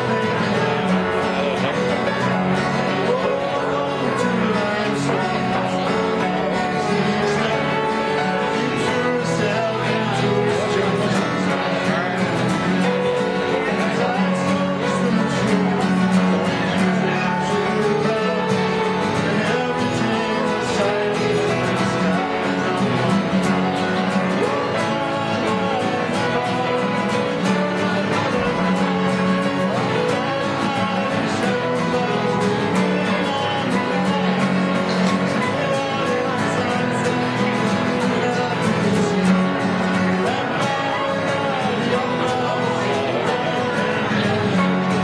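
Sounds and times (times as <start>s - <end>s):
digital piano: 0.0s - 45.0s
man singing folk song: 0.0s - 45.0s
strummed acoustic guitar: 0.0s - 45.0s.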